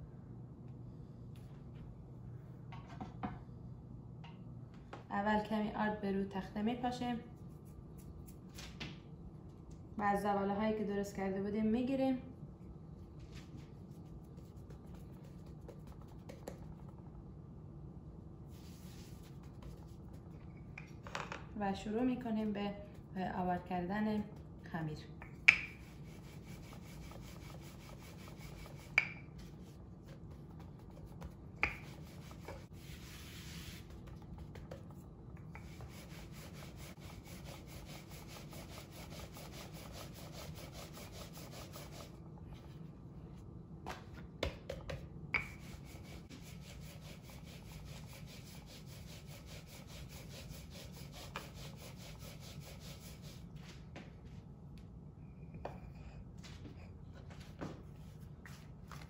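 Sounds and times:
rolling pin rubbing on dough: 18.5s - 20.3s, 25.7s - 42.7s, 45.4s - 53.5s.

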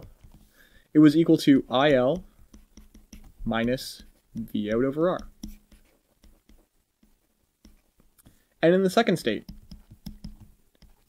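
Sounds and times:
stylus tapping pen tablet: 0.0s - 0.5s, 1.8s - 8.1s, 9.3s - 11.0s.

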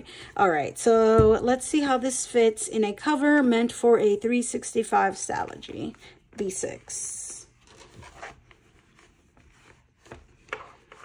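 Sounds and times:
notebook rubbing and shuffling: 5.1s - 11.0s.

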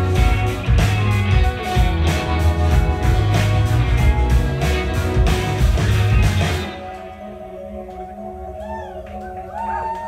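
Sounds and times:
rock band playing: 0.0s - 8.0s.

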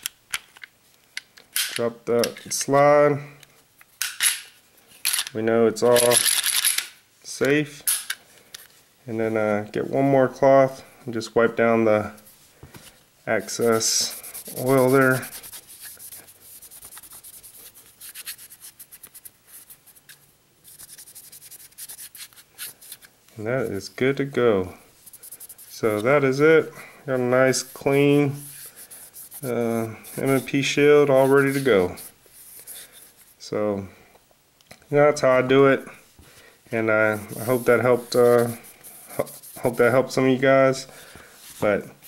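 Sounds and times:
cloth rubbing on pistol: 13.4s - 23.9s, 24.9s - 26.5s, 27.2s - 33.4s, 37.0s - 40.2s.

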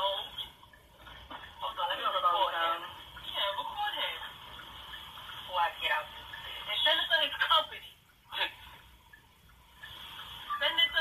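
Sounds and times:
muffled speech through speakers: 1.3s - 4.4s, 10.5s - 11.0s.

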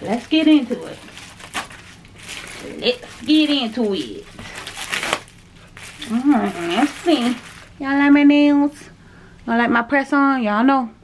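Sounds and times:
scissors cutting plastic: 0.0s - 7.6s
plastic bag crinkling: 0.0s - 8.1s.

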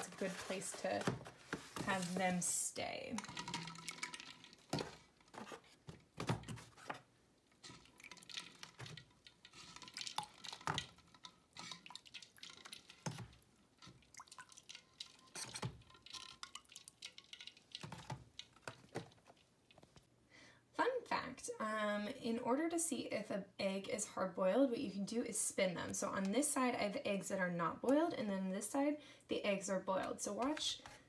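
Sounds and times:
water dripping and splashing: 3.2s - 5.4s, 7.4s - 20.0s.

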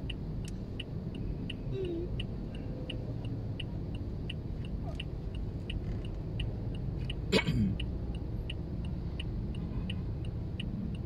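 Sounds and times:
car indicator ticking: 0.0s - 11.0s.

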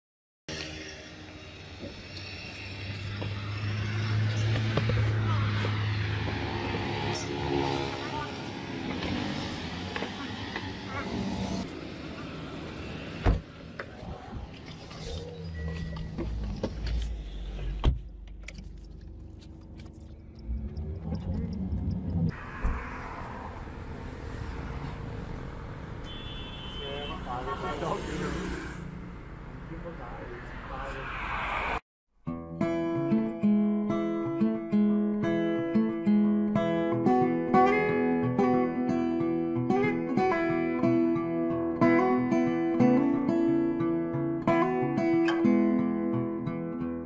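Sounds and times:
road traffic passing: 0.5s - 31.8s
low engine hum: 1.2s - 26.0s.

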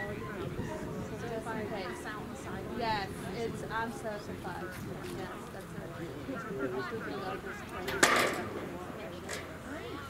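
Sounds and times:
faint voices of people: 0.0s - 10.0s.

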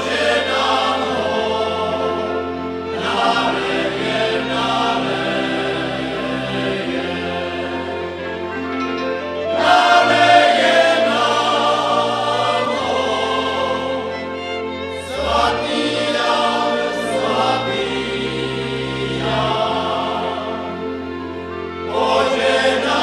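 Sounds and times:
cimbalom band: 0.0s - 23.0s
voices singing folk song: 0.0s - 23.0s.

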